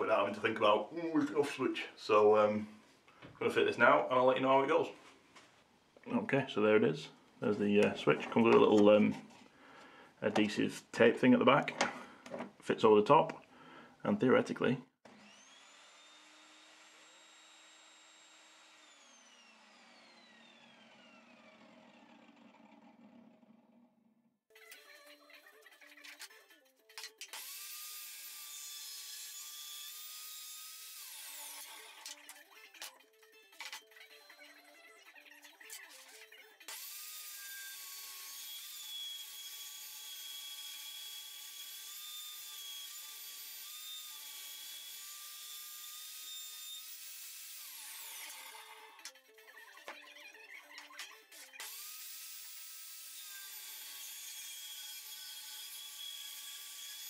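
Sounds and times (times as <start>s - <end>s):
table saw whining: 15.1s - 23.8s
table saw spinning down: 15.1s - 24.0s.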